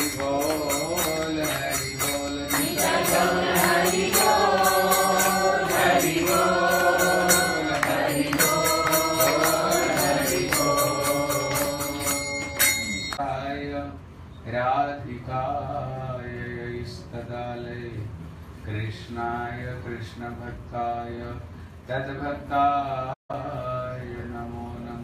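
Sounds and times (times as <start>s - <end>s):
man chanting into a microphone: 18.7s - 25.0s.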